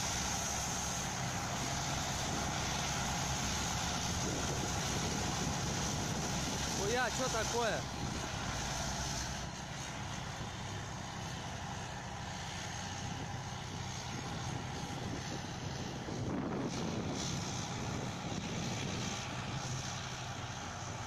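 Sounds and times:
tracked vehicle diesel engines: 0.0s - 21.0s.

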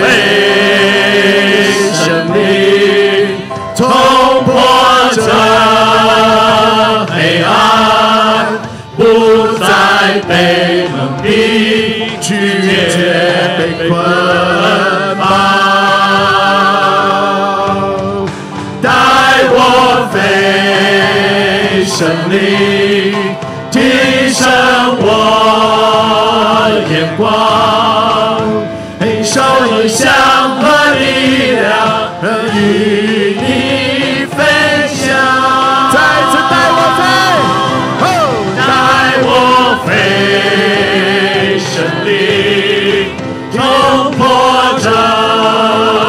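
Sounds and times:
band accompaniment: 0.0s - 46.0s
group singing praise song: 0.0s - 46.0s.

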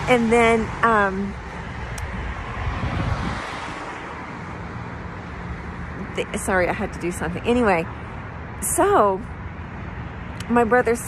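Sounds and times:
car passing on wet road: 1.5s - 4.8s.

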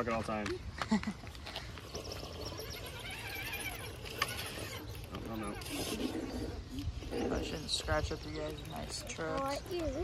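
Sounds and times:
electric motor and gears whining: 1.7s - 10.0s.

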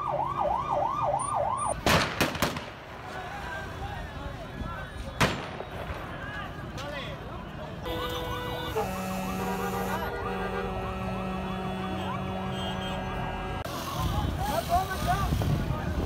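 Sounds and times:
street noise: 0.0s - 16.0s.

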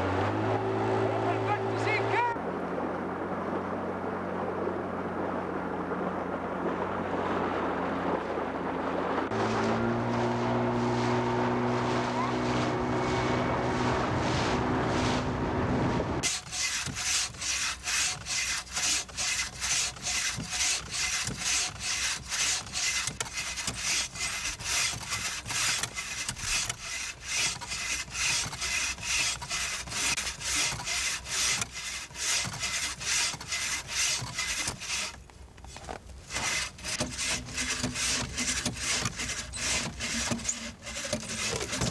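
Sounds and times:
engine humming: 0.0s - 17.4s
bow saw cutting log: 9.3s - 15.4s, 16.2s - 35.2s, 35.8s - 41.9s.

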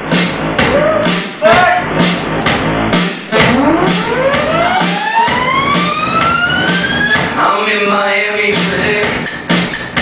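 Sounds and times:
dance music with steady beat: 0.0s - 10.0s
siren-like synth sweep rising: 3.3s - 7.3s.

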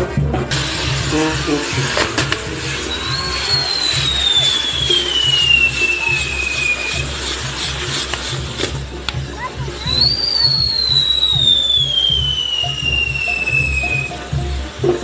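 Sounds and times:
music with steady beat: 0.0s - 15.0s
firework sparks hissing: 0.4s - 15.0s
whistle falling in pitch: 2.8s - 7.1s, 9.8s - 14.2s.

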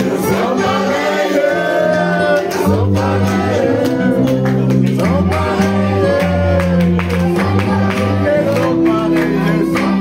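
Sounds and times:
men singing into microphones: 0.0s - 10.0s.

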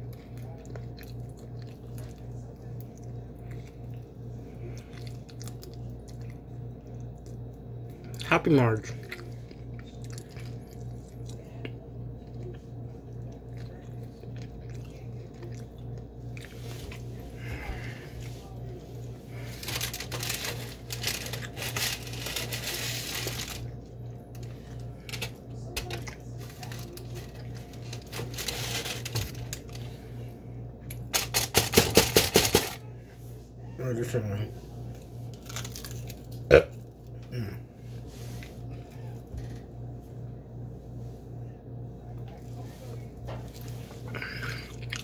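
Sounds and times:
low pulsing hum: 0.0s - 45.0s
paper towel rustling and crinkling: 16.5s - 23.7s, 26.3s - 30.0s.

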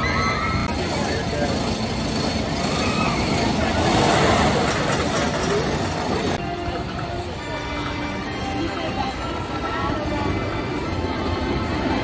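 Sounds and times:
people's voices and yells: 0.0s - 1.2s, 2.6s - 3.9s
roller coaster rumbling on track: 0.0s - 12.0s.

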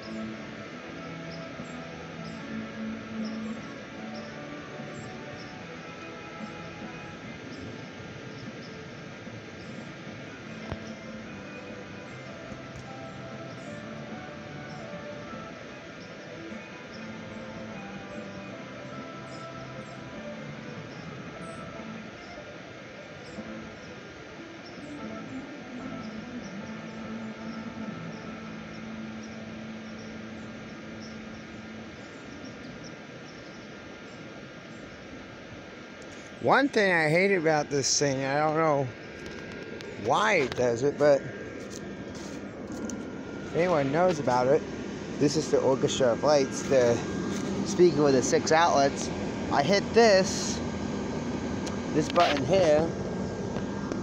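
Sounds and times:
song from speaker: 0.0s - 31.3s, 36.5s - 50.7s, 51.6s - 54.0s
background hiss: 0.0s - 54.0s.

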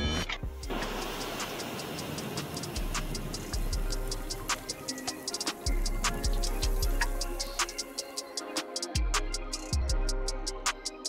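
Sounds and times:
background music with low bass: 0.0s - 11.0s
rapid clock-like ticking: 0.4s - 11.0s.

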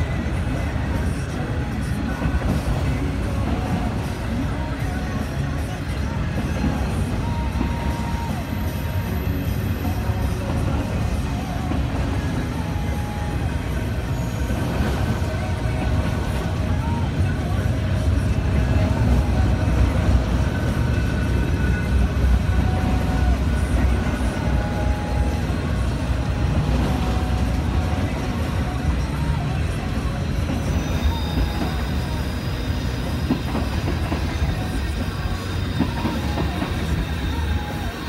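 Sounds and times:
train wheels rumbling on rail: 0.0s - 38.0s
wheels squealing: 0.0s - 38.0s.

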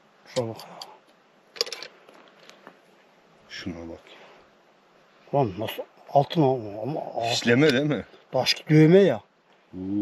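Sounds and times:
light metallic clinks: 0.3s - 1.0s.

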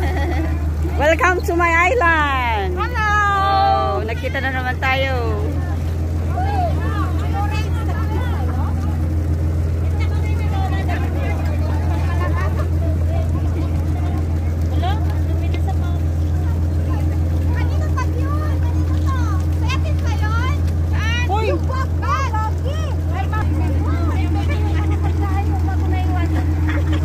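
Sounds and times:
boat engine humming: 0.0s - 27.0s.

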